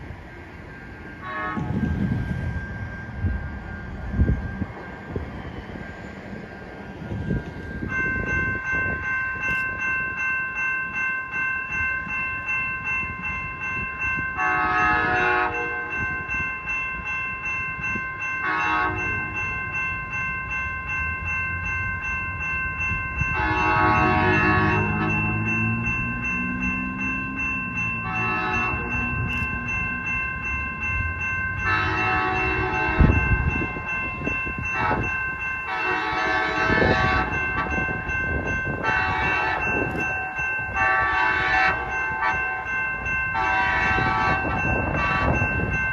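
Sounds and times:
crossing bell ringing: 0.0s - 45.9s
train horn blasts: 1.2s - 2.0s, 14.4s - 16.0s, 18.4s - 19.2s, 23.3s - 26.4s, 28.0s - 29.4s, 31.6s - 33.4s, 34.7s - 37.8s, 38.8s - 40.0s, 40.8s - 42.7s, 43.3s - 45.5s.

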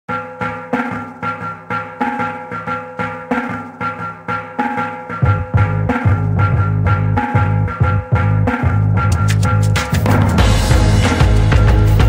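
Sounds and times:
electronic dance music: 0.1s - 12.0s
deep heavy bass: 5.2s - 12.0s.

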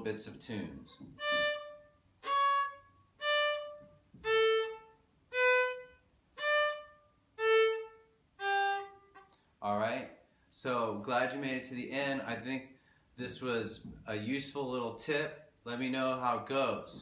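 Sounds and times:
fiddle bowed notes: 1.0s - 9.3s.

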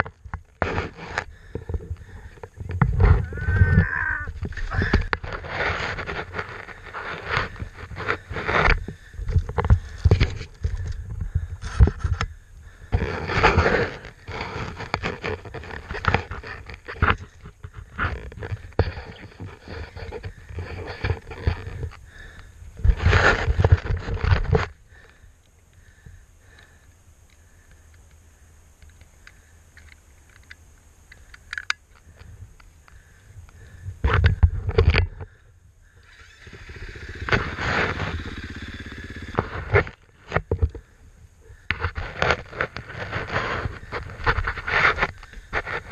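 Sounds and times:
scraping on rock: 0.0s - 25.2s, 36.4s - 45.9s
dirt bike engine revving: 36.0s - 39.8s.

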